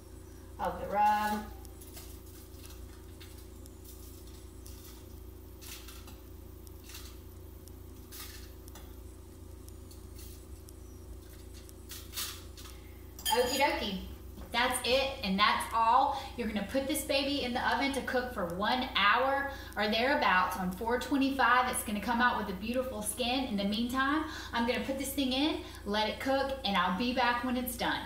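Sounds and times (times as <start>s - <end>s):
low hum: 0.0s - 28.0s
metal spoon clinking glass bowl: 13.2s - 13.6s.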